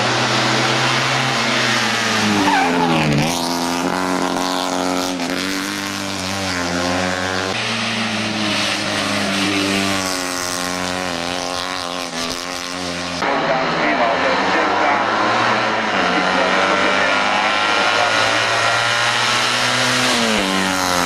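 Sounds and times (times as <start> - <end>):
car engine running hard: 0.0 - 21.0.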